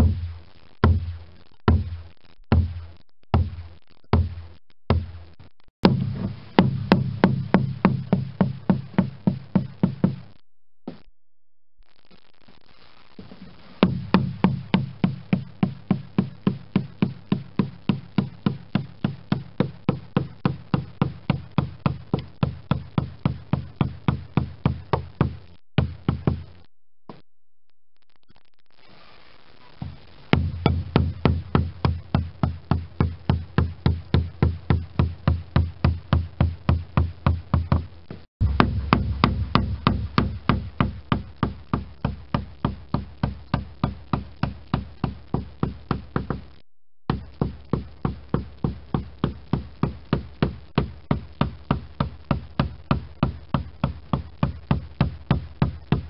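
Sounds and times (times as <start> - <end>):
mallet striking caulking iron: 0.0 - 10.3, 13.8 - 26.5, 30.3 - 46.5, 47.1 - 56.0.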